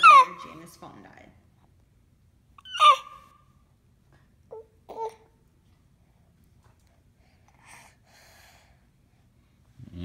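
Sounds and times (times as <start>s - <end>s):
baby squealing: 0.0s - 0.5s, 2.6s - 3.3s.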